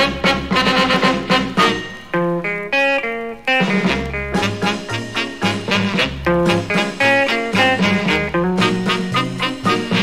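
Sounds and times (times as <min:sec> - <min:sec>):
guitar melody: 0:00.0 - 0:10.0.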